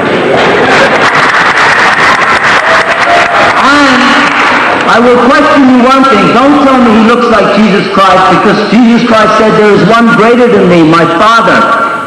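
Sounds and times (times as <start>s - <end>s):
audience applauding: 0.1s - 5.2s.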